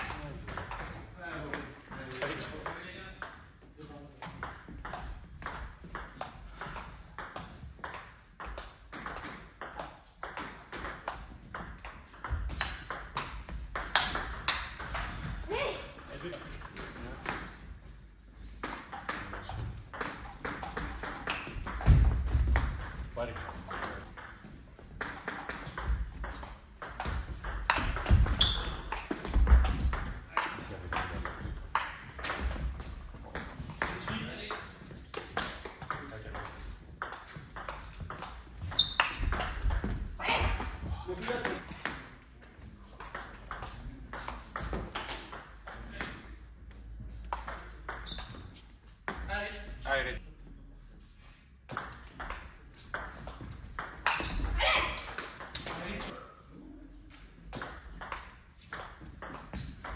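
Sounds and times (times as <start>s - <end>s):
ping pong ball clicks and bounces: 0.0s - 3.5s, 4.2s - 15.3s, 18.6s - 42.2s, 42.9s - 46.4s, 47.1s - 48.5s, 51.7s - 56.2s, 57.5s - 59.9s.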